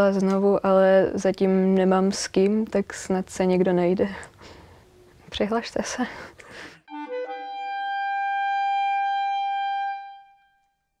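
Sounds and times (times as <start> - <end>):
clarinet high note: 6.9 - 10.9.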